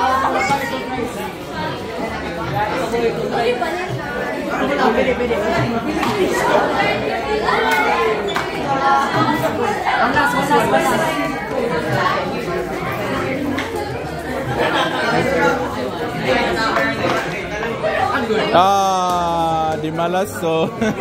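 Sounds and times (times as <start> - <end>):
students chattering: 0.0 - 21.0.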